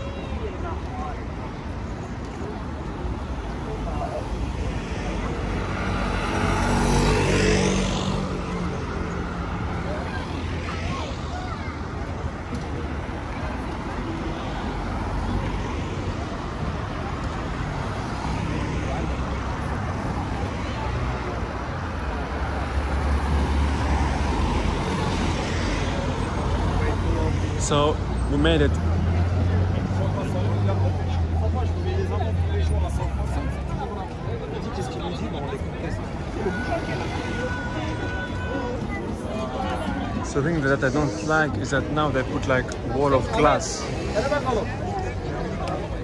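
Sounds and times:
crowd chatter: 0.0 - 46.0
street traffic: 0.0 - 46.0
car passing by: 3.9 - 13.8, 22.2 - 46.0.

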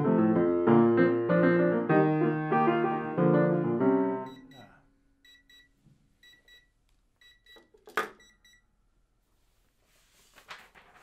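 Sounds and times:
electronic timer double beeps: 4.3 - 8.6.

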